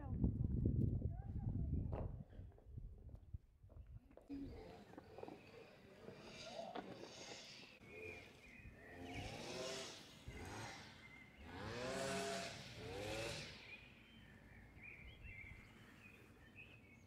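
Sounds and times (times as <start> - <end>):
distant cars passing: 4.3 - 16.5
small birds chirping: 4.3 - 17.0.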